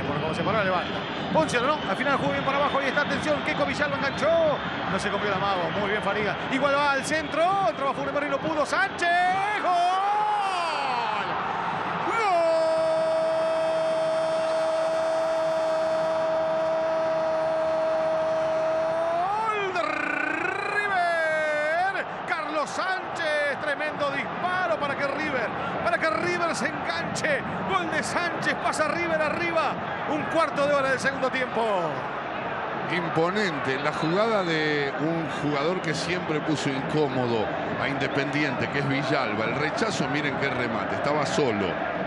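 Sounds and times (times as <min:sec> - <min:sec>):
commentator shouting: 0:18.5 - 0:31.8.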